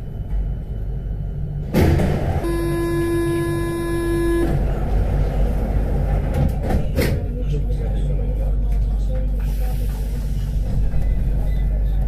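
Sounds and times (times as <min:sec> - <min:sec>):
metro train running rumble: 0:00.0 - 0:12.0
buzzing warning tone: 0:02.4 - 0:04.6.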